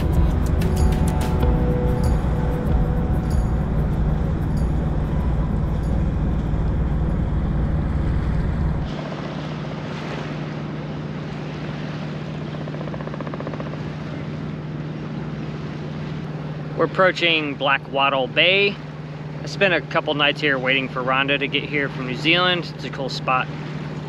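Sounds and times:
wind rumble on microphone: 0.0s - 10.9s
boat engine humming: 0.0s - 24.0s.

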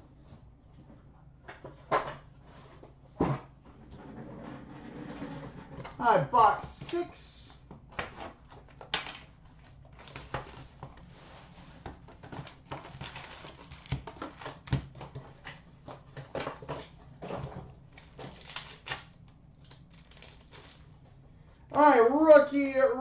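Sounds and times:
foil packs rustling and clicking: 8.0s - 11.1s, 11.8s - 21.0s.

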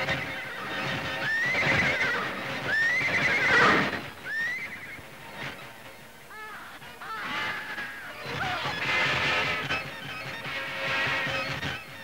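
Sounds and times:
horse whinnying: 0.1s - 5.0s.

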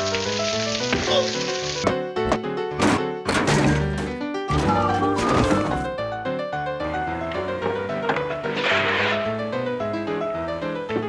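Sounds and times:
orchestral comedy film music: 4.5s - 6.1s.

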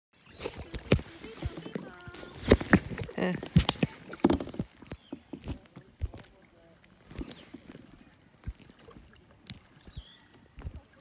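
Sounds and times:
water washing: 0.2s - 11.0s
paddle knocking on kayak: 0.4s - 6.3s
faint voices: 0.4s - 8.1s.

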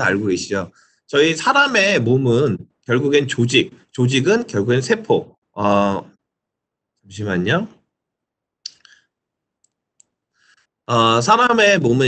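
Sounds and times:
computer mouse clicks: 9.6s - 10.2s.

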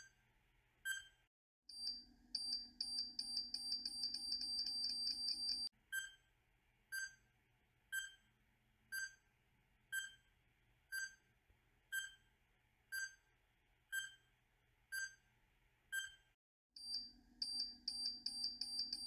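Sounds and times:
short electronic beeps: 16.0s - 19.0s.

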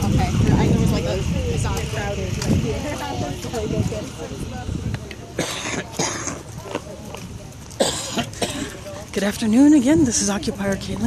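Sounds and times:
person coughing: 5.4s - 6.4s, 7.8s - 8.8s.

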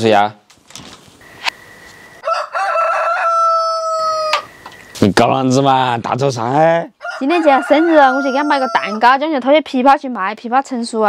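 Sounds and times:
rooster crowing: 2.1s - 4.8s, 7.0s - 9.2s.

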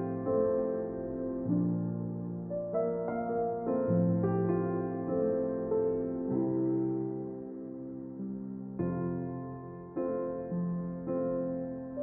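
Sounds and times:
soft piano-like keyboard music: 0.0s - 12.0s.

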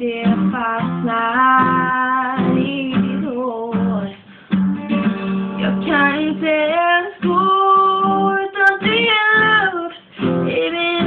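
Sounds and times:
strummed classical guitar: 0.0s - 11.0s
woman singing: 0.0s - 11.0s.

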